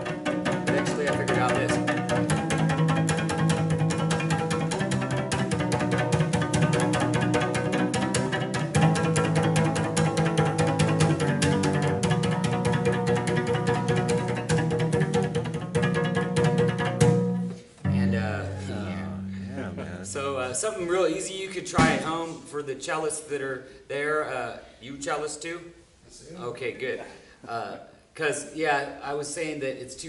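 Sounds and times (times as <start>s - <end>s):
cello bouncing-bow strokes: 0.0s - 22.6s.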